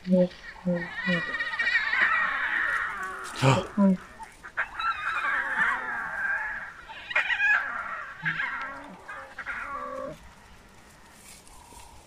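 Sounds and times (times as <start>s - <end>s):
lion cubs mewing: 0.0s - 12.0s.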